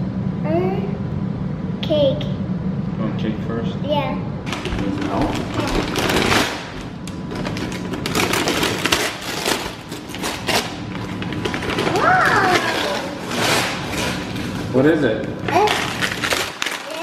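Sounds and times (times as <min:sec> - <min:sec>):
paper bag and tissue rustling: 0:04.5 - 0:14.8, 0:15.5 - 0:17.0.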